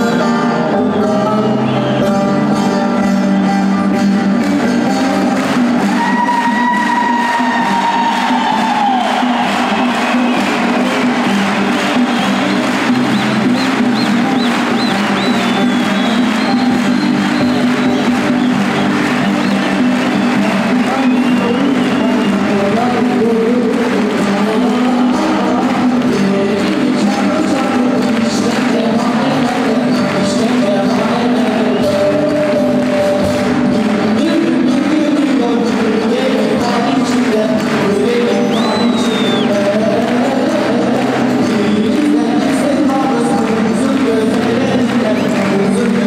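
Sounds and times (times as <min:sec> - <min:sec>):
live folk band playing: 0:00.0 - 0:46.0
crowd cheering: 0:03.9 - 0:46.0.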